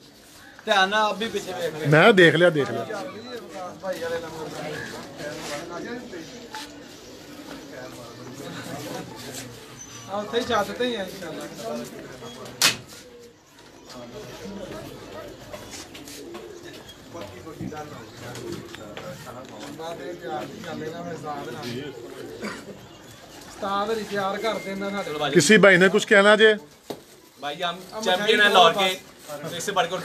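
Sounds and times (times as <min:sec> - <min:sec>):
murmuring voices: 0:00.0 - 0:30.0
man speaking loudly: 0:01.7 - 0:03.2, 0:25.3 - 0:26.6
pigeons cooing: 0:02.8 - 0:25.4.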